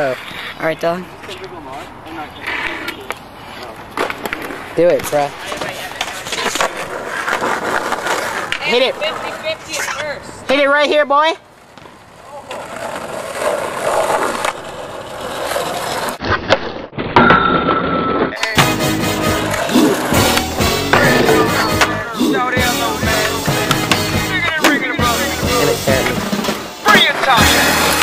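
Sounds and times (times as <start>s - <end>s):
skateboard wheels rolling on concrete: 0.0s - 17.0s, 17.6s - 28.0s
music: 18.5s - 28.0s.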